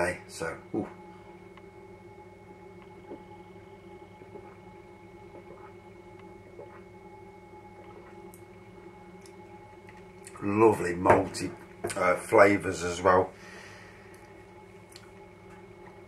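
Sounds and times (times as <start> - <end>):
quiet steady hum: 0.0 - 16.0.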